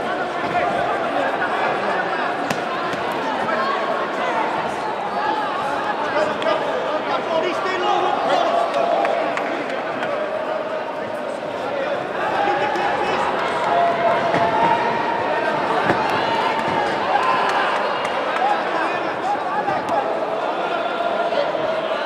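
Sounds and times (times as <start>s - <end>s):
crowd shouting and talking: 0.0s - 22.0s.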